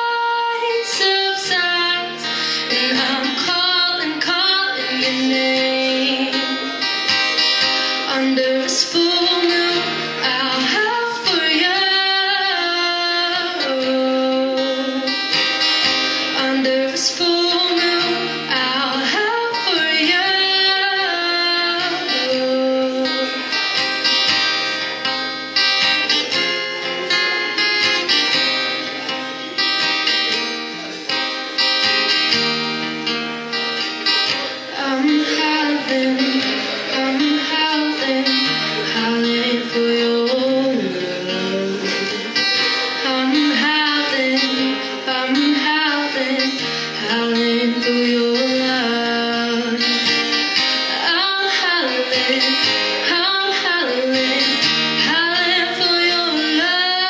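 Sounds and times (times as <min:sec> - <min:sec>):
woman singing: 0:00.0 - 0:24.2, 0:34.1 - 0:57.0
acoustic guitar: 0:00.0 - 0:57.0.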